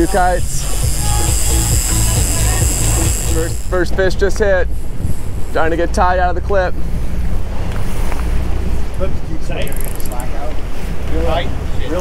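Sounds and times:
rapid high-pitched clicking: 0:00.0 - 0:03.9
low rumble of boat and sea: 0:00.0 - 0:12.0
wind buffeting microphone: 0:03.6 - 0:12.0.

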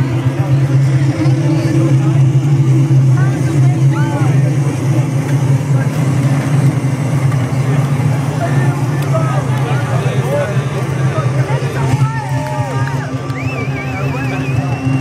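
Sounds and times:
crowd talking and calling out: 0:00.0 - 0:15.0
loud steady low rumble: 0:00.0 - 0:15.0.

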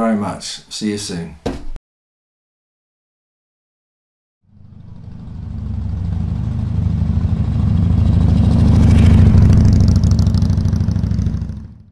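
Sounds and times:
motorcycle engine rumble: 0:04.5 - 0:11.9.

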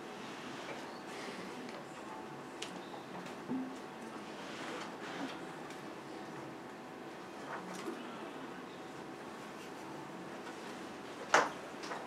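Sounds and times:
low steady hum: 0:00.0 - 0:04.5.

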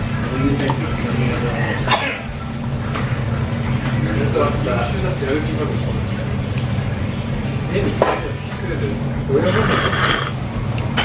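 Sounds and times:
background music with a beat: 0:00.0 - 0:11.0
steady low hum: 0:00.0 - 0:11.0.

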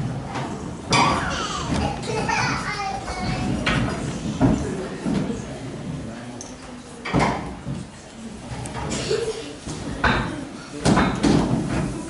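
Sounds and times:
children chattering and calling out: 0:00.6 - 0:06.2, 0:07.8 - 0:10.8.

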